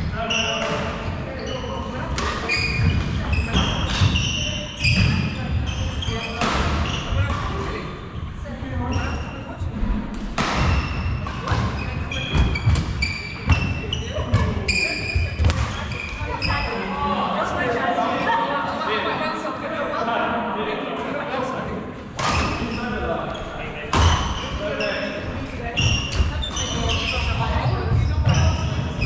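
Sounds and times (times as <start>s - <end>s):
shoes squeaking: 0.0s - 7.3s, 10.6s - 16.9s, 22.2s - 29.0s
racket hitting shuttlecock: 10.2s - 14.6s.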